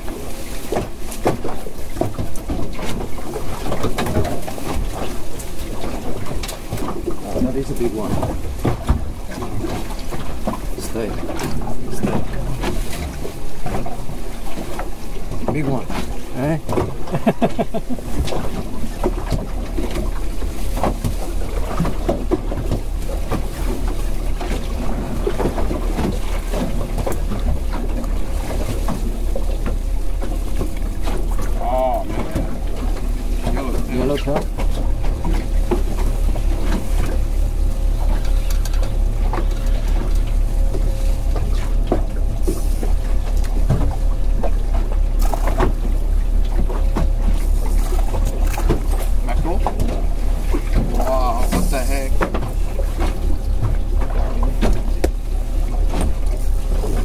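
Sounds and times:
voices: 0:31.4 - 0:34.6, 0:50.8 - 0:52.3.

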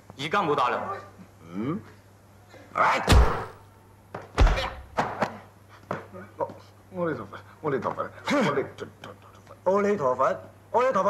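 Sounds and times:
fist punching a bag: 0:03.1 - 0:03.6, 0:04.4 - 0:04.9.

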